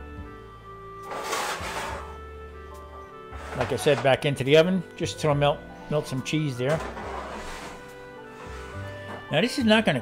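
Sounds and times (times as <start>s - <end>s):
background music with held notes: 0.0s - 10.0s
cloth towel rustling on pan: 6.8s - 9.0s.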